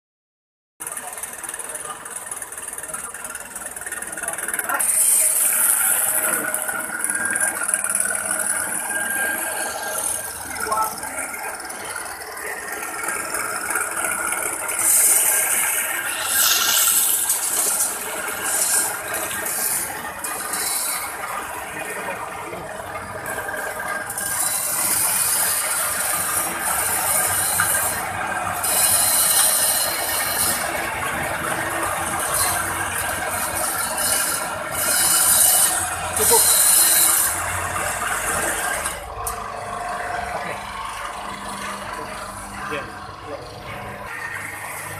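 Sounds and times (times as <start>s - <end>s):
coffee grinder grinding beans: 0.9s - 44.9s.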